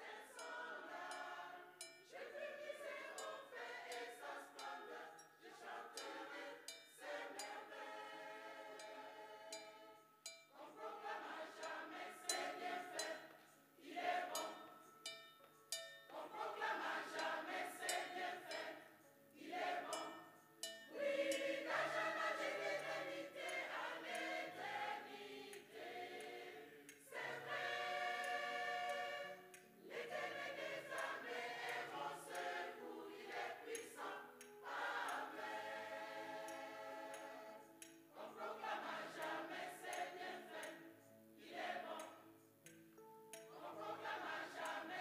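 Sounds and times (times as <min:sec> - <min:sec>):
mixed choir singing: 0:00.0 - 0:45.0.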